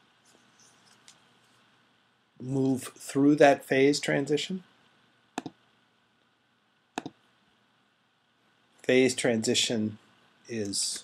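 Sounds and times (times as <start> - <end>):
computer mouse clicks: 5.4 - 5.6, 7.0 - 7.2.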